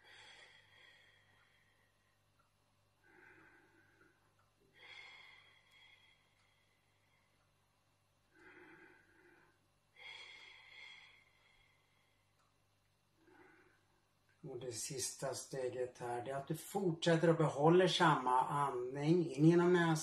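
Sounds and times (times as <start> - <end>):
man breathing slowly: 0.0 - 7.6, 8.3 - 12.5, 13.2 - 14.1.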